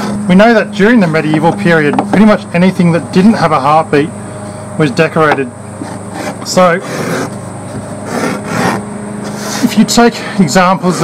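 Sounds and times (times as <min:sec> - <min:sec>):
metal tool scraping leather: 0:05.8 - 0:09.7.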